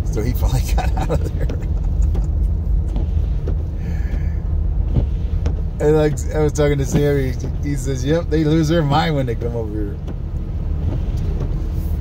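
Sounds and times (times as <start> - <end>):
car engine rumble: 0.0 - 12.0
tyres on snowy road: 0.0 - 12.0.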